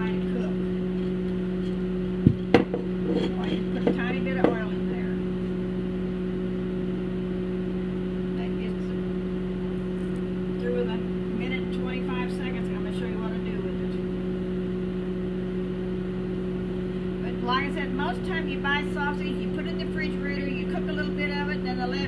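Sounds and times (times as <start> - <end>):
microwave oven humming: 0.0 - 22.0.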